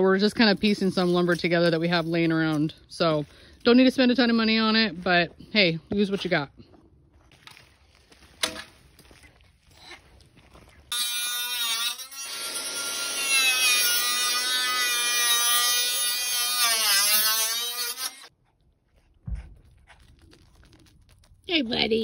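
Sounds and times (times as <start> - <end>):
power saw cutting plastic: 10.9 - 18.3.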